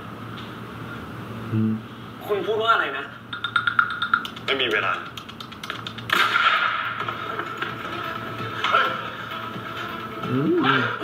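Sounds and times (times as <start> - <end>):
background music with held tone: 6.4 - 11.0.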